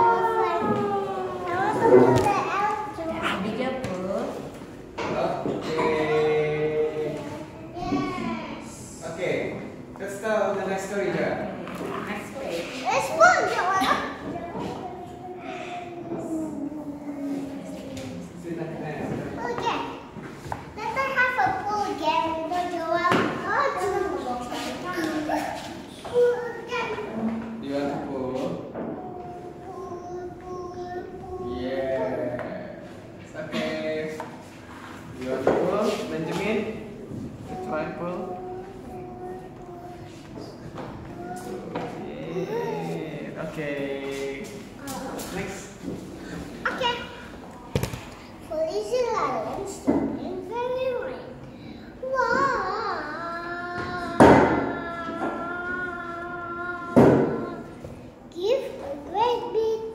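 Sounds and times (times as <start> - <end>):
child exclaiming: 0.0 - 2.9, 52.0 - 57.6
children's drawn-out vocal sound: 0.0 - 3.4, 13.1 - 18.3, 51.2 - 58.2
faint children's voices: 0.0 - 3.4, 12.8 - 18.4, 37.4 - 43.2.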